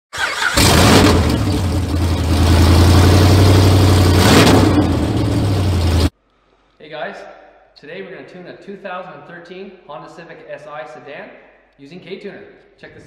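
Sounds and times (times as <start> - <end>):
car engine running: 0.6 - 6.1.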